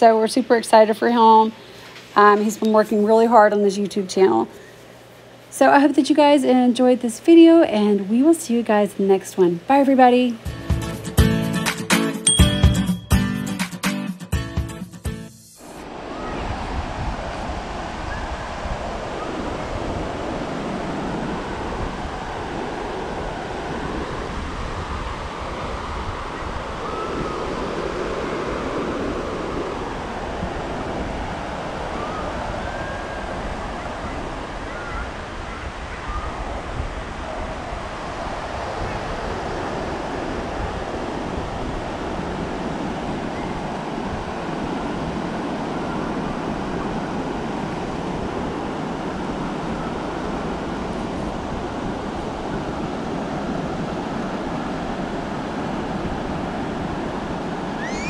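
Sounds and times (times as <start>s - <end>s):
surf washing onto beach: 15.6s - 58.0s
wind rumbling on microphone: 15.6s - 58.0s.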